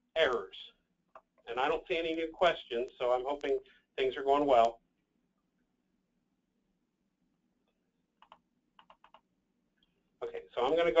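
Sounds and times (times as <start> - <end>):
computer mouse clicks: 8.2 - 9.3.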